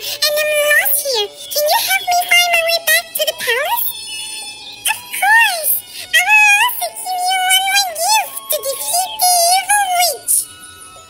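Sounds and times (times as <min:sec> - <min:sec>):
high pitch-shifted cartoon voice: 0:00.0 - 0:03.9, 0:04.8 - 0:10.4.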